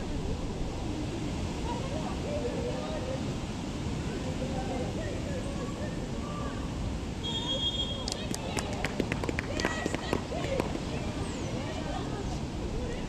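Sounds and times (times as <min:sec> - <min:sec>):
referee's whistle: 0:07.2 - 0:08.1.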